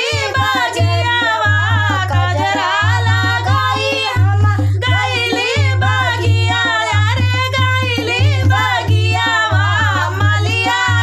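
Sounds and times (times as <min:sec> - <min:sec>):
hand drum beat: 0:00.0 - 0:11.0
women singing folk song: 0:00.0 - 0:11.0.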